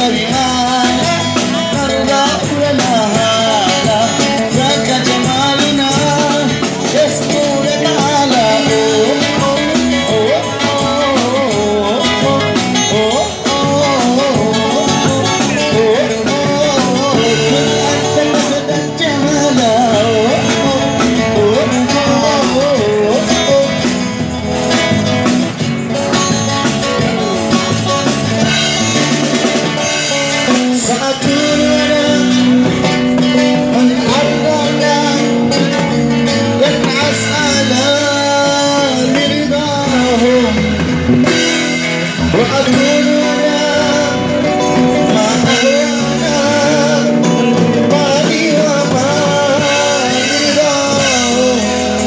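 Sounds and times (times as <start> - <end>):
person singing: 0.0 - 24.9, 26.0 - 52.0
drum kit: 0.0 - 52.0
guitars: 0.0 - 52.0.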